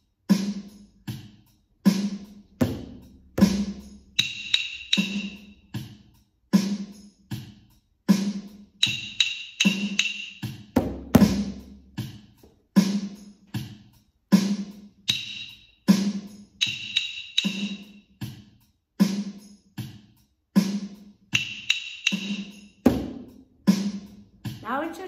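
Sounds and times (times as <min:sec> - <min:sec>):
recorded drum beat: 0:00.2 - 0:25.0
wooden rhythm sticks clicking: 0:08.8 - 0:10.5, 0:16.6 - 0:17.8.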